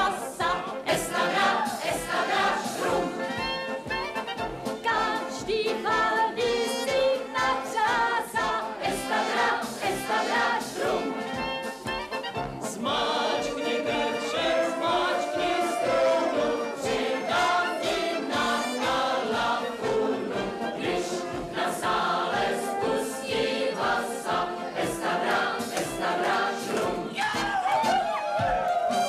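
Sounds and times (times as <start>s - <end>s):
group of voices singing: 0.0s - 3.7s, 4.6s - 27.5s
band accompaniment: 0.0s - 29.0s.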